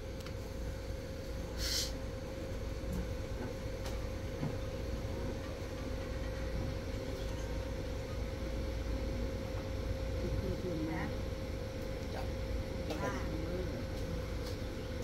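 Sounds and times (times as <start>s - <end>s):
low electrical hum: 0.0s - 15.0s.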